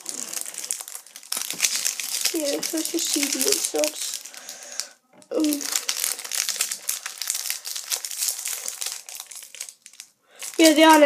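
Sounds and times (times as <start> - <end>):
foil wrapper crinkling: 0.0 - 11.0.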